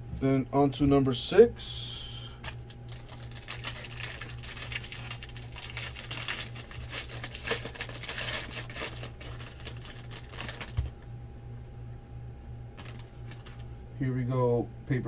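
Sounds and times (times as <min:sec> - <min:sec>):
foil wrapper tearing and crinkling: 0:02.4 - 0:10.9, 0:12.8 - 0:13.6.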